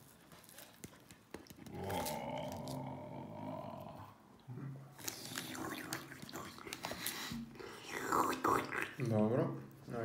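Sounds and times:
faint clicks and taps: 0.6 - 1.8
person's drawn-out vocal sound: 1.7 - 4.2.

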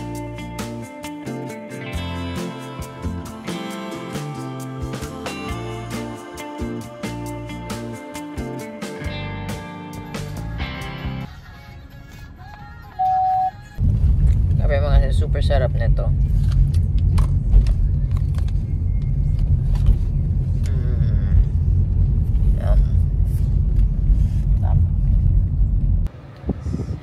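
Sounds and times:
low rumble in car cabin: 12.6 - 27.0
short beep: 13.0 - 13.6
woman murmuring: 20.6 - 21.6, 22.5 - 23.2.

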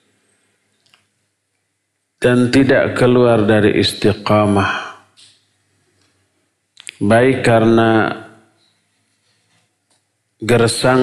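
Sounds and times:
man speaking: 2.2 - 5.0, 6.8 - 8.3, 10.4 - 11.0
mouth clicks: 6.8 - 7.0.

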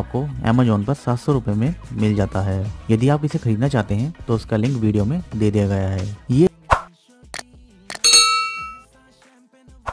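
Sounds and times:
faint background music: 0.0 - 9.9
bright bell ding: 7.9 - 8.8.

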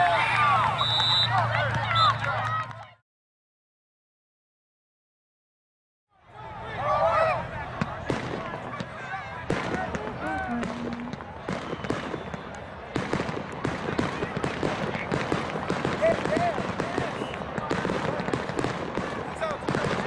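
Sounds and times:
voices: 6.3 - 11.6.

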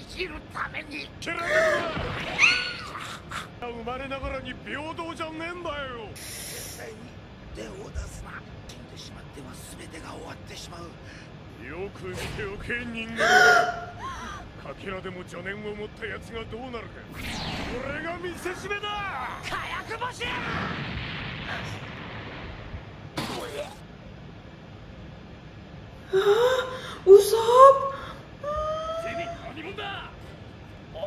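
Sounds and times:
high-pitched breathy cry: 13.2 - 14.4.

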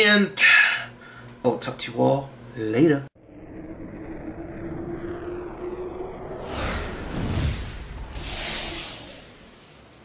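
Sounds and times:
spacecraft engine drone: 3.2 - 10.0.

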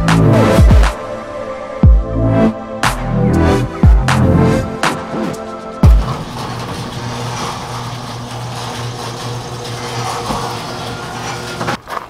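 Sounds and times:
low motor hum: 5.8 - 11.8.

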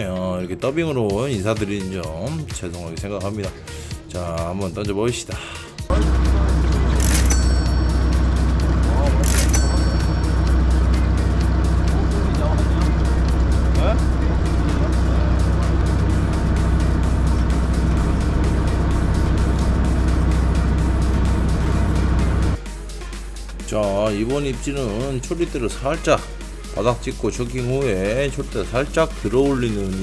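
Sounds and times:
boat engine humming: 5.9 - 22.6.

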